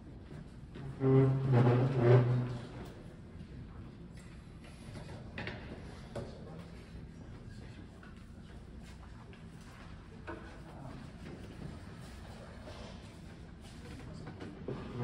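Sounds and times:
cello bowed low notes: 0.7s - 3.0s.

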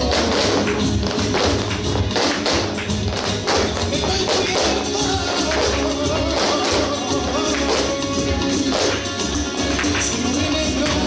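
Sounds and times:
flamenco music: 0.0s - 11.0s.

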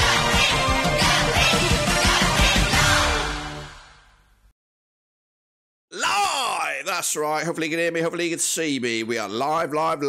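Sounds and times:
man's drawn-out wordless call: 5.9s - 6.9s
man speaking: 5.9s - 10.0s.

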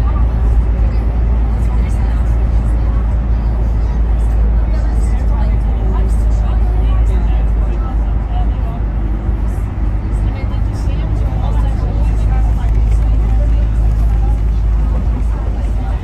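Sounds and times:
vehicle engine and road rumble: 0.0s - 16.0s.

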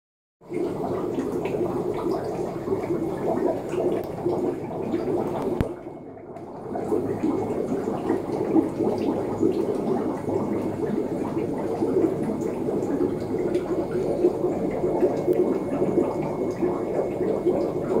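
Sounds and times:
aquarium water bubbling: 0.4s - 18.0s.

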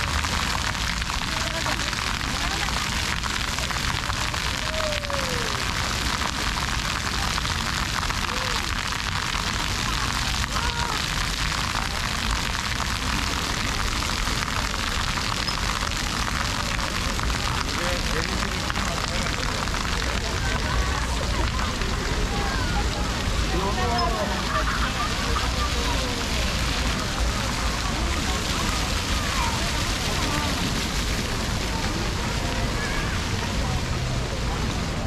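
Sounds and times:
crowd chatter: 0.0s - 35.0s
fountain jets spattering: 0.0s - 35.0s.

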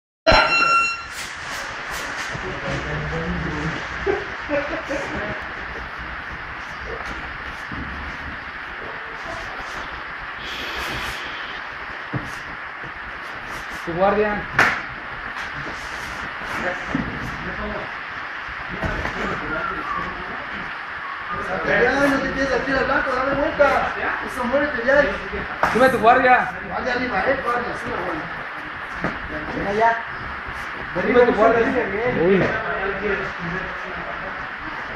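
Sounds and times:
electronic timer buzzer beep: 0.3s - 1.2s
steady hiss: 0.9s - 34.9s.

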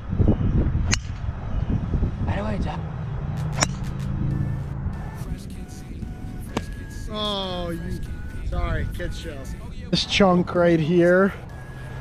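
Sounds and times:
steady low rumble: 0.0s - 12.0s
golf club striking ball: 0.9s - 1.2s, 3.5s - 4.1s, 6.5s - 6.8s.

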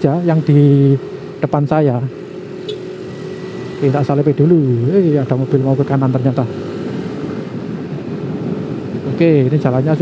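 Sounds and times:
motorcycle engine humming: 0.0s - 10.0s
road and traffic noise: 0.0s - 10.0s.

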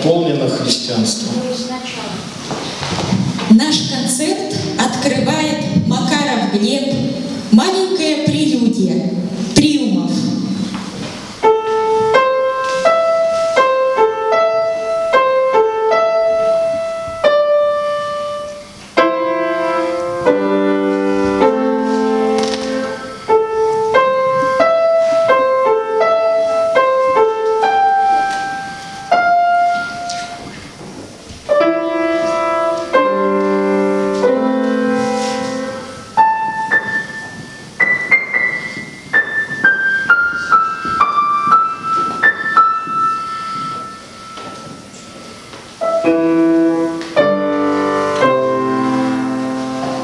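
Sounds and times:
solo grand piano: 2.2s - 50.0s.

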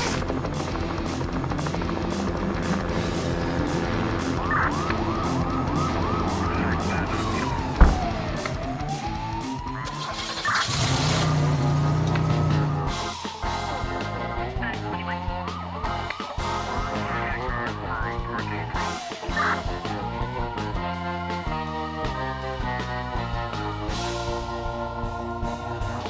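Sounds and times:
background music: 0.0s - 26.0s
police siren: 3.0s - 26.0s.

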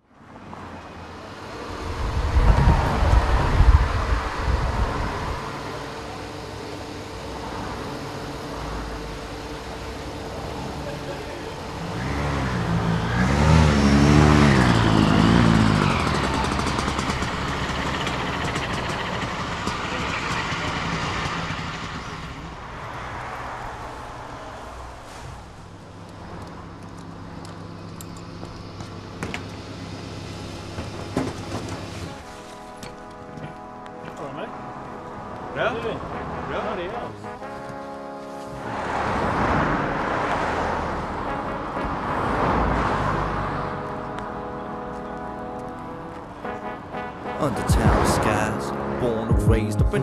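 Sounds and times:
steady mechanical background: 0.8s - 13.1s
vehicle engine running: 1.0s - 23.4s.

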